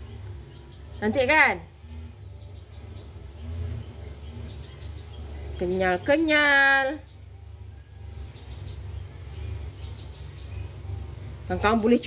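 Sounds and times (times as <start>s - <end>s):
low steady hum: 0.0s - 12.0s.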